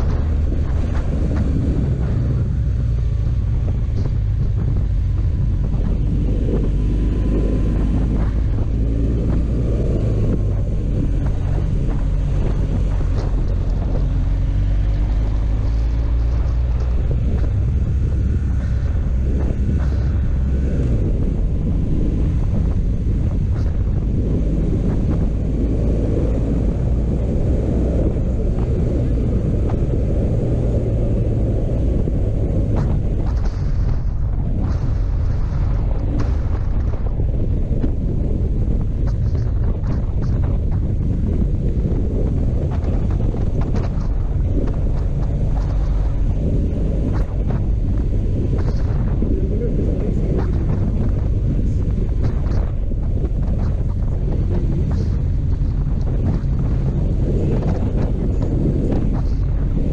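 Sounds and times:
motorcycle engine running: 0.0 - 59.9
wind rumble on microphone: 0.0 - 59.9.

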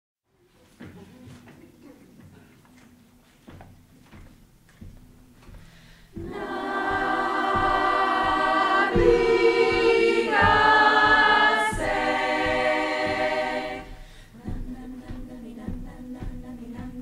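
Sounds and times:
choir singing held chords: 6.1 - 17.0.

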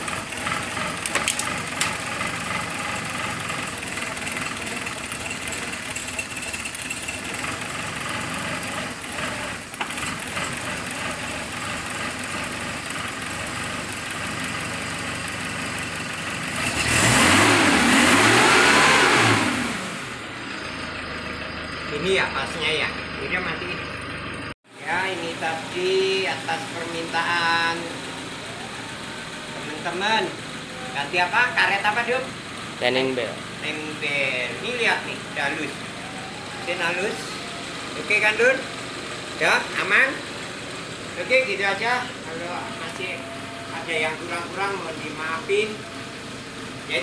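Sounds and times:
car engine idling: 0.0 - 47.0
engine revving: 0.0 - 47.0.

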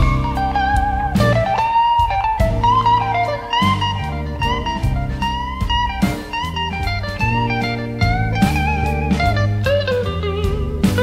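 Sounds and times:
electric blues band: 0.0 - 11.0
lead guitar bending notes: 0.0 - 11.0.

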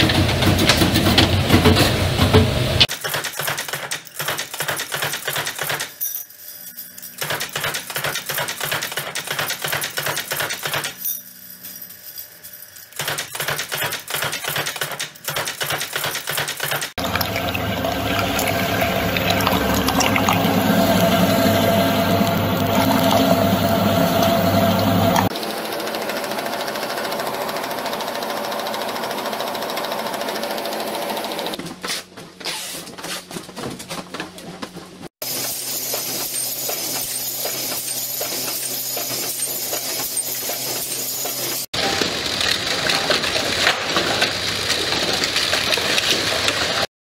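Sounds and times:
machinery clattering: 0.0 - 5.9, 12.9 - 25.3
meat grinder motor humming: 17.0 - 31.5.

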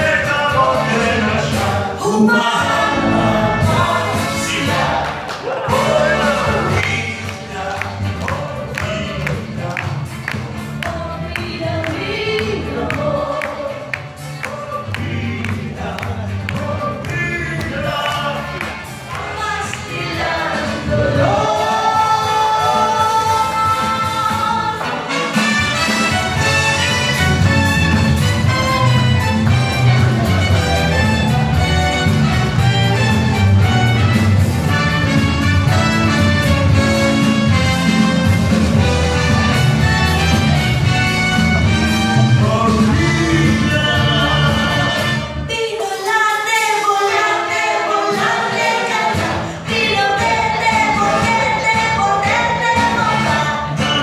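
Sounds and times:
voices singing together: 0.0 - 9.8, 10.7 - 25.1, 42.4 - 54.0
band playing a steady beat: 0.0 - 45.5, 48.0 - 54.0
backing music: 0.0 - 54.0.

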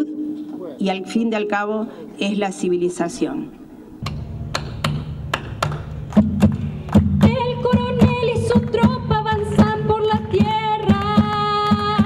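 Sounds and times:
low held bass notes: 2.8 - 10.0
sharp percussive taps: 4.0 - 12.0.

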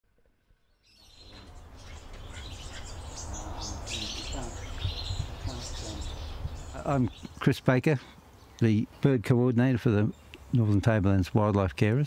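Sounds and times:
birds chirping and calling: 0.8 - 12.0.

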